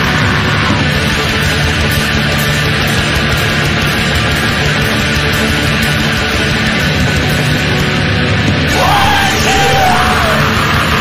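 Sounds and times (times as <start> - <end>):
yelled vocal: 0.0 - 1.2, 8.7 - 11.0
heavy metal music: 0.0 - 11.0.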